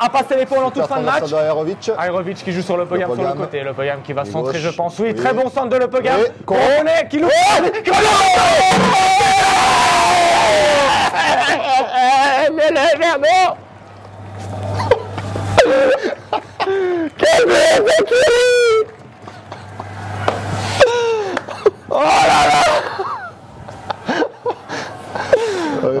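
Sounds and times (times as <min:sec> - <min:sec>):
men yelling and wailing: 0:05.2 - 0:13.8, 0:14.8 - 0:20.2, 0:20.8 - 0:26.0
loud shouts: 0:06.1 - 0:13.6, 0:21.9 - 0:23.1
men laughing: 0:07.3 - 0:13.6, 0:14.6 - 0:26.0.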